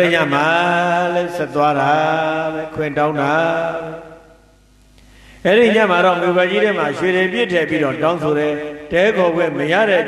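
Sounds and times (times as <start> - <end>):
man chanting into a microphone: 0.0 - 4.4, 5.4 - 10.0.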